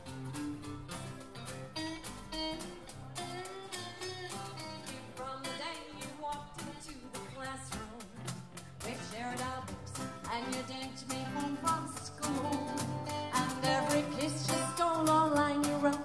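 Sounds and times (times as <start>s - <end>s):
guitar: 0.0s - 16.0s.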